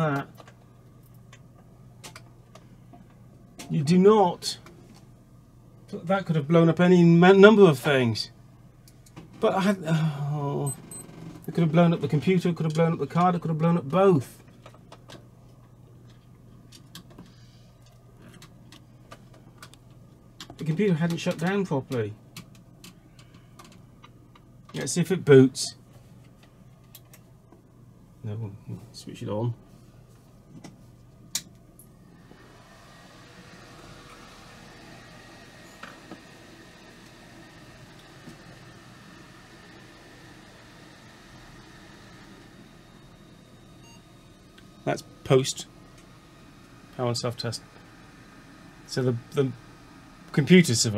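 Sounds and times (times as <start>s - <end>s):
computer fans whirring: 0.0s - 50.9s
steady low hum: 0.0s - 50.9s.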